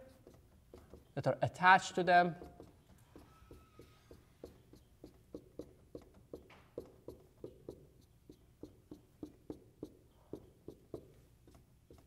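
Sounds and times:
marker tapping on a whiteboard: 0:00.0 - 0:01.4, 0:02.3 - 0:12.0.

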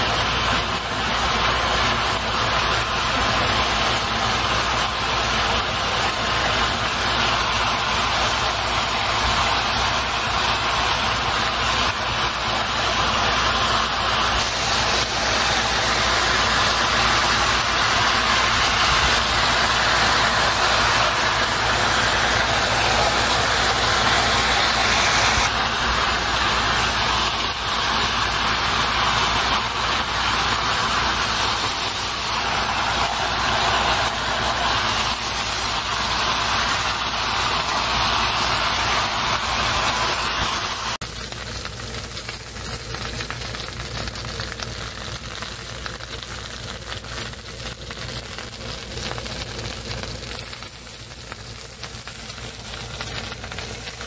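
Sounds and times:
chicken sizzling in hot oil: 0:00.0 - 0:54.0.

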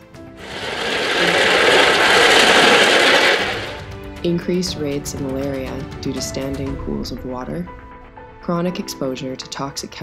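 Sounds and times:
ball mill grinding ore: 0:00.0 - 0:03.9.

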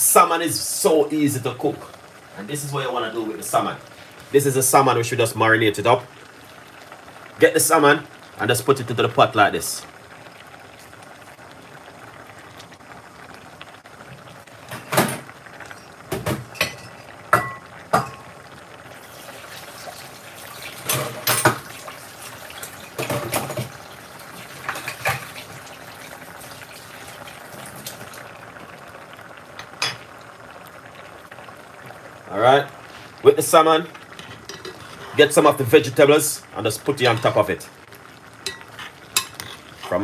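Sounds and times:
stew bubbling in a pot: 0:00.0 - 0:40.0
utensils clinking on pot: 0:16.5 - 0:18.2, 0:20.8 - 0:21.6, 0:34.4 - 0:34.9, 0:38.5 - 0:39.6.

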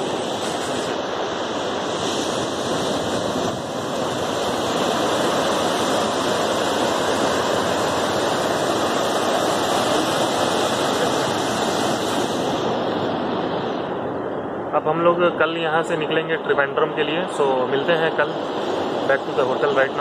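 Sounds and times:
sea surf on rocky shore: 0:00.0 - 0:20.0.

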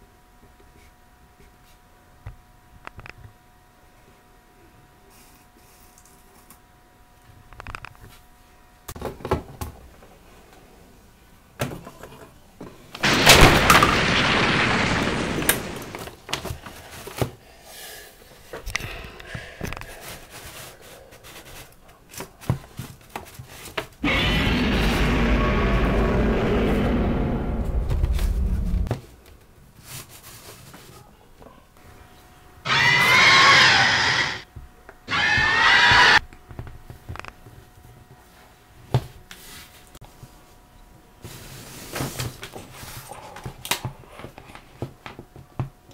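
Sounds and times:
screeching monster roars: 0:13.0 - 0:16.0, 0:24.0 - 0:28.9, 0:32.7 - 0:34.4, 0:35.1 - 0:36.2
loud explosion blast: 0:13.0 - 0:16.1, 0:24.0 - 0:28.9
sharp cracks: 0:13.0 - 0:16.3, 0:24.0 - 0:28.9, 0:32.7 - 0:34.4, 0:35.1 - 0:36.2.

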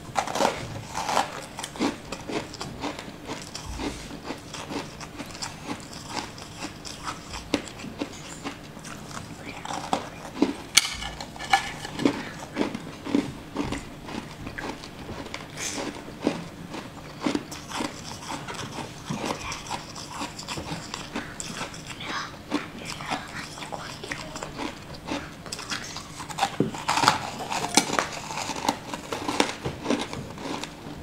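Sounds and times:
chewing crunchy food: 0:00.0 - 0:31.0.

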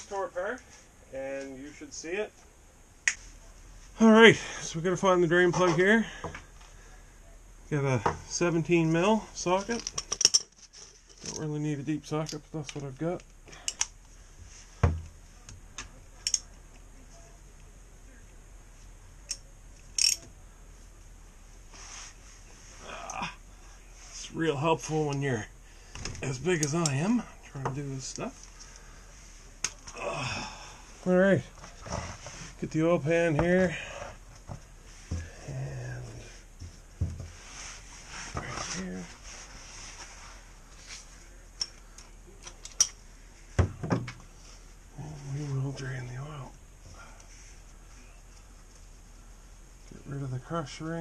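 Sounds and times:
soft scrape: 0:21.6 - 0:22.8, 0:37.3 - 0:41.3.

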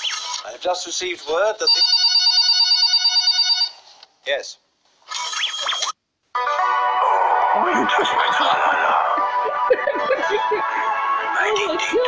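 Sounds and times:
telephone ringing with warbling trill: 0:01.7 - 0:03.8, 0:05.1 - 0:06.6.

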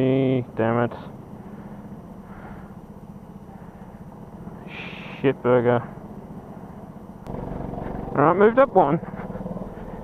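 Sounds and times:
go-kart engine idling: 0:00.0 - 0:10.0.

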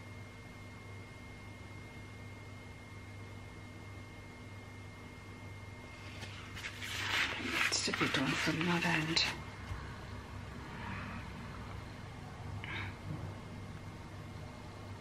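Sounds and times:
faint high whine: 0:00.0 - 0:15.0
low room hum: 0:00.0 - 0:15.0
rustling noise: 0:06.0 - 0:09.4.

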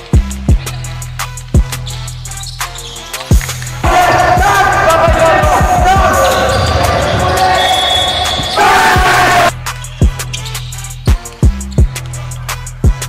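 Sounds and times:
backing music with deep bass: 0:00.0 - 0:13.0
players' voices: 0:03.8 - 0:09.5.

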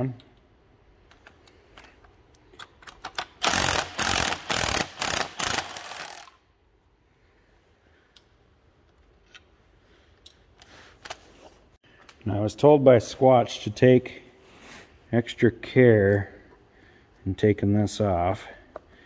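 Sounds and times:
ratchet wrench ratcheting: 0:03.0 - 0:06.4.

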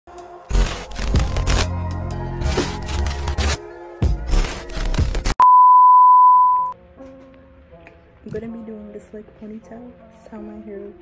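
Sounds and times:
steady test-tone beep: 0:05.4 - 0:06.8.

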